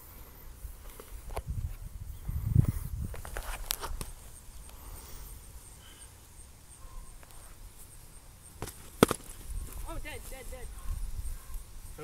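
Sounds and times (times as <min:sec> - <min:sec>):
footsteps on grass: 0:08.6 - 0:12.0.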